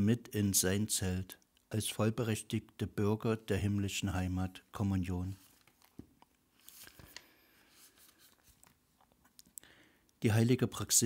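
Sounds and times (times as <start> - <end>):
faint clicks and rustles: 5.4 - 9.6.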